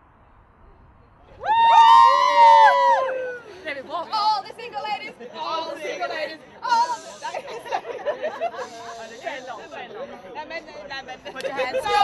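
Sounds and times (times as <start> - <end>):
women chattering: 3.4 - 12.0.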